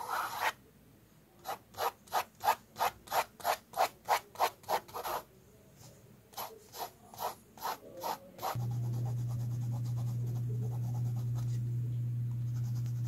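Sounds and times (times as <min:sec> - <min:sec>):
pencil scratching on paper: 0:00.0 - 0:00.6, 0:01.4 - 0:05.3, 0:06.3 - 0:11.6, 0:12.4 - 0:13.0.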